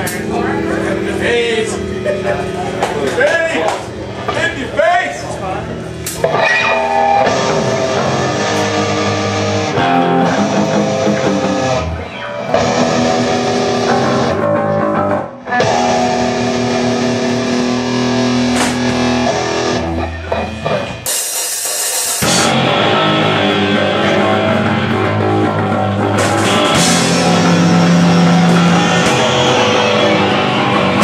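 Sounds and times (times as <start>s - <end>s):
punk band playing live: 0.0s - 31.0s.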